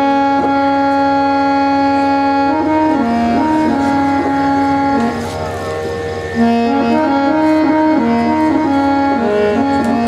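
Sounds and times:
harmonium holding a note: 0:00.0 - 0:10.0.

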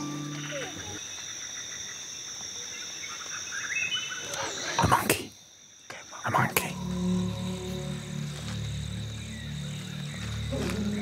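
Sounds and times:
insects high-pitched tones: 0:00.0 - 0:11.0.

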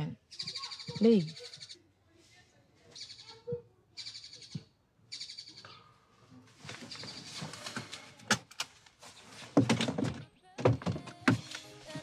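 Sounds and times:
background music: 0:09.6 - 0:12.0.

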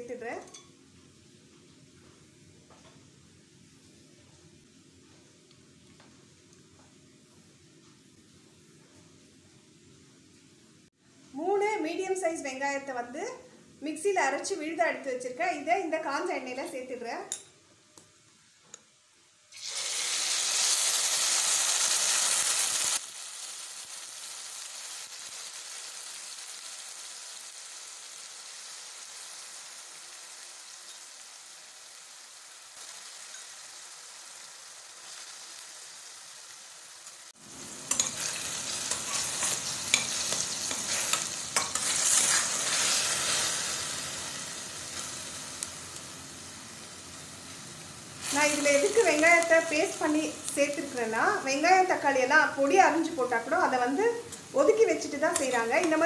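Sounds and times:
hot oil sizzling: 0:19.5 - 0:56.0
steel spoon scraping pot: 0:37.9 - 0:42.9.

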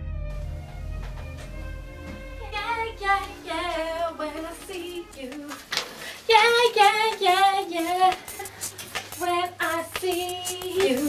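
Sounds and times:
woman singing with vibrato: 0:02.4 - 0:08.6, 0:09.2 - 0:11.0.

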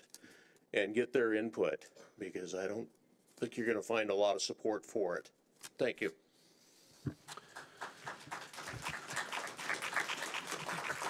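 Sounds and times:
audience applauding: 0:07.3 - 0:11.0.

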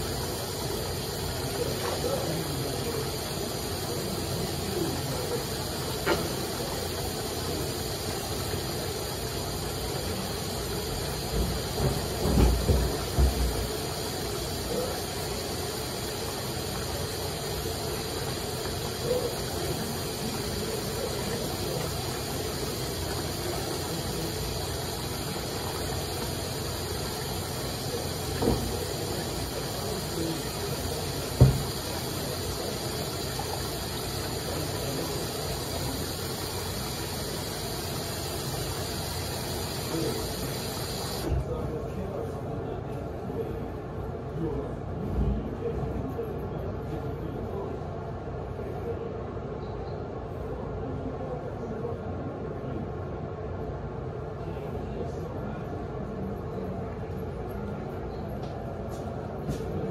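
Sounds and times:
tap water running into sink: 0:00.0 - 0:41.4.

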